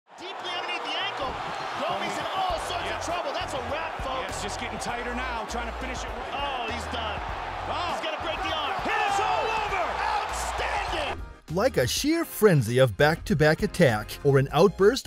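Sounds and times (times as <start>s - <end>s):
excited voices: 0.2s - 11.2s.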